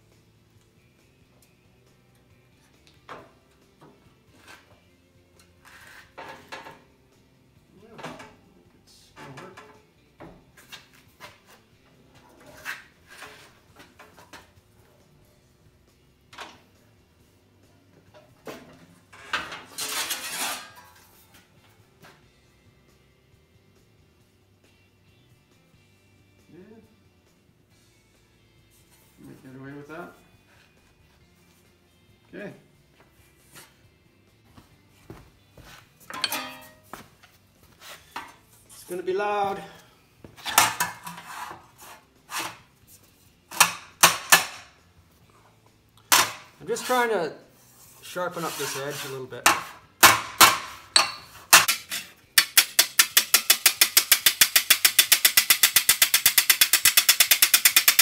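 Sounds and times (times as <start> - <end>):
sheet metal clanks and knocks: 36.1 - 36.8
metallic rattle: 36.1 - 36.9, 51.0 - 58.0.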